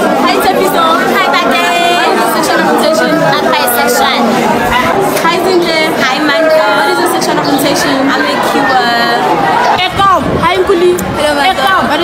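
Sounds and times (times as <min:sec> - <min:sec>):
background chatter: 0:00.0 - 0:12.0
voices talking over each other: 0:00.0 - 0:12.0.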